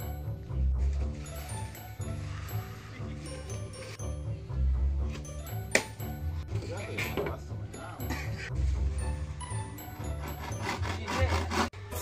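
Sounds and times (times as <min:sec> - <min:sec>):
background music: 0:00.0 - 0:12.0
hand saw cutting wood: 0:10.1 - 0:11.8.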